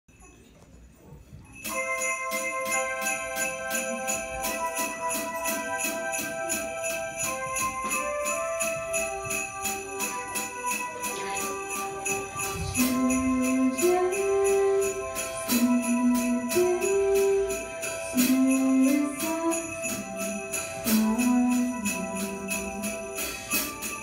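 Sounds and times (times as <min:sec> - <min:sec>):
sleigh bells shaken: 0:00.1 - 0:24.0
stepwise melody line: 0:01.6 - 0:24.0
sustained keyboard chords: 0:01.6 - 0:24.0.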